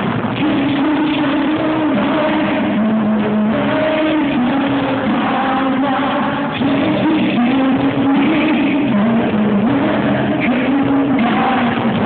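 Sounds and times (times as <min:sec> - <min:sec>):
man singing with live band: 0:00.0 - 0:12.0.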